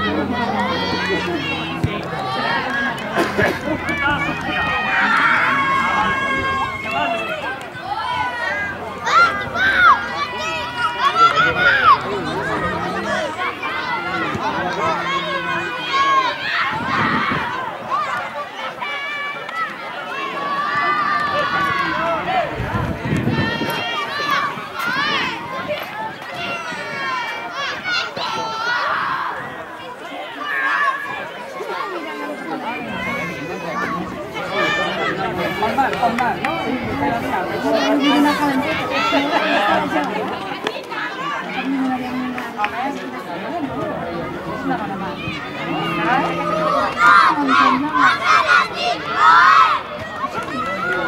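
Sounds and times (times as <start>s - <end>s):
children chattering: 0.0s - 51.0s.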